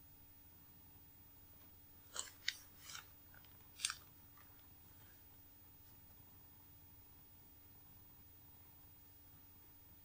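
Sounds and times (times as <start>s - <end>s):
crisp clicking: 2.1s - 4.7s.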